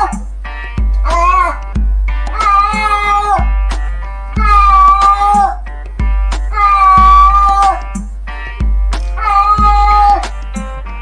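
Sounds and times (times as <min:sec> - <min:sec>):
background music with bass beat: 0:00.0 - 0:11.0
cat meowing: 0:01.0 - 0:01.6, 0:02.3 - 0:03.5, 0:04.4 - 0:05.6, 0:06.5 - 0:07.9, 0:09.2 - 0:10.3.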